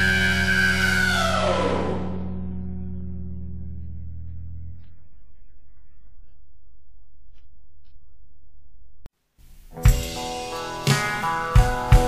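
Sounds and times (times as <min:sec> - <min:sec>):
punk rock song held note: 0:09.7 - 0:12.0.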